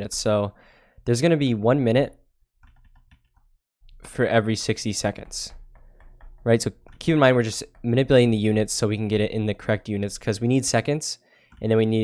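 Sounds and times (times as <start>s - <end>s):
stylus tapping on tablet: 2.6s - 4.0s, 4.6s - 9.7s.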